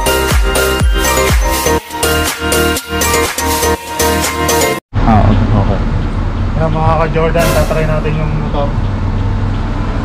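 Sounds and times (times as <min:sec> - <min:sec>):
street traffic drone: 0:03.6 - 0:10.0.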